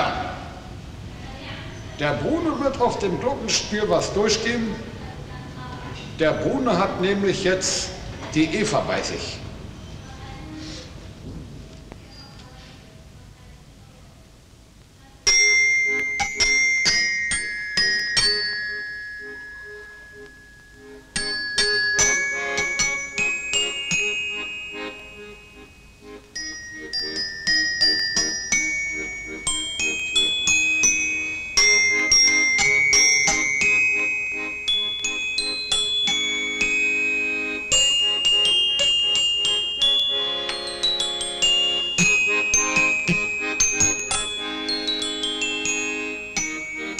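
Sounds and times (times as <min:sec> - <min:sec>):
accordion chords: 0:00.0 - 0:11.0, 0:15.3 - 0:46.9
low rumbling background noise: 0:00.0 - 0:42.2
glockenspiel tune: 0:15.3 - 0:46.9.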